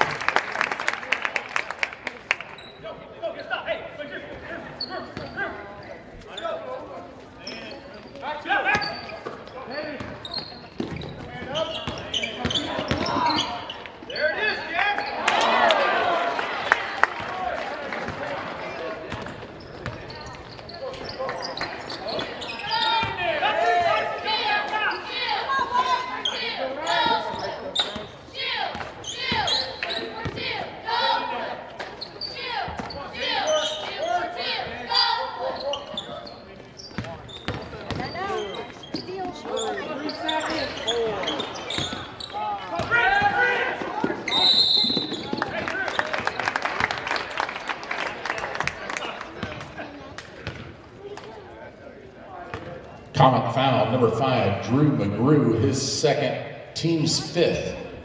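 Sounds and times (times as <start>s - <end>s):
echoing voices of players and crowd: 0.0s - 58.0s.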